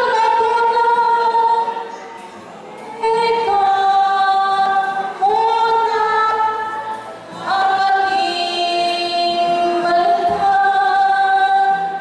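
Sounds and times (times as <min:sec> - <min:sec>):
women singing in unison: 0:00.0 - 0:01.8, 0:03.0 - 0:12.0.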